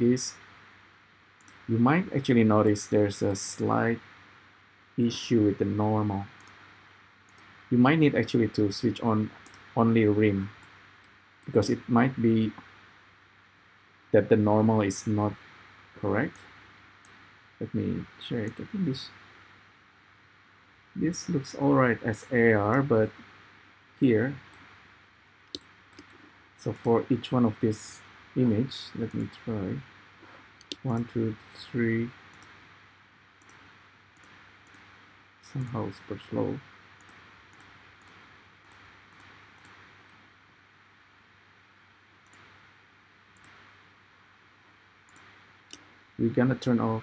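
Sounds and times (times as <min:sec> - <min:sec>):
faint hiss: 0:00.0 - 0:47.0
computer mouse clicks: 0:01.4 - 0:01.7, 0:06.4 - 0:06.6, 0:07.3 - 0:07.6, 0:09.4 - 0:09.7, 0:16.3 - 0:17.2, 0:24.4 - 0:24.7, 0:25.4 - 0:26.2, 0:29.0 - 0:29.4, 0:30.6 - 0:31.2, 0:32.2 - 0:32.6, 0:33.4 - 0:35.0, 0:35.6 - 0:35.8, 0:37.0 - 0:40.2, 0:42.2 - 0:42.6, 0:43.4 - 0:43.7, 0:45.1 - 0:45.9.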